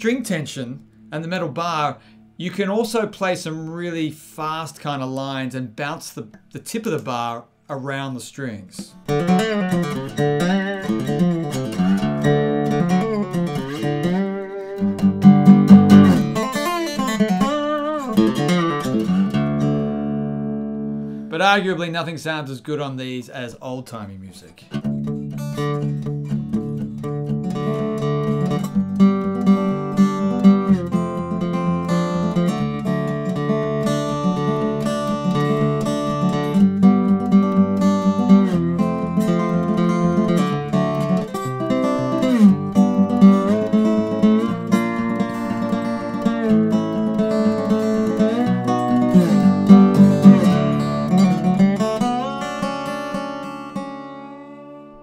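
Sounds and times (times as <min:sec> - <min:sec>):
slide guitar playing: 0:08.9 - 0:22.1, 0:24.7 - 0:55.0.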